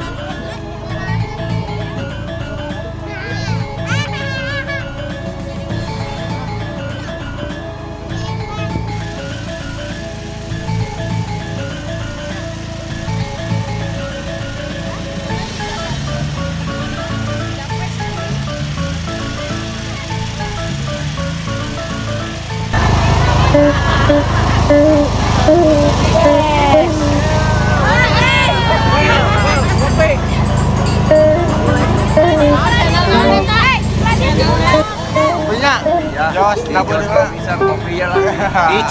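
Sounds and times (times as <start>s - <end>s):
melodic tune over bass line: 0.0s - 38.9s
wavering sliding lead line: 4.8s - 38.9s.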